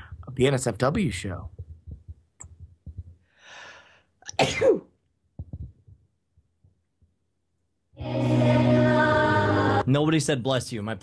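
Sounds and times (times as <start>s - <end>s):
breathy intake of breath: 3.3s - 4.2s
person sneezing: 4.2s - 5.0s.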